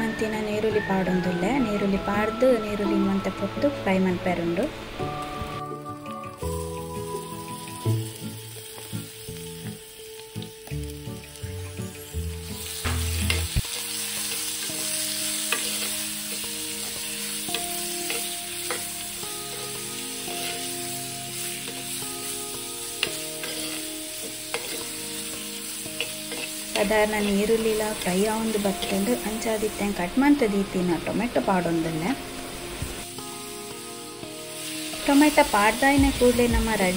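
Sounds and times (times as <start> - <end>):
onions sizzling in hot oil: 0.0 - 36.9
steel spoon scraping pot: 23.4 - 25.0.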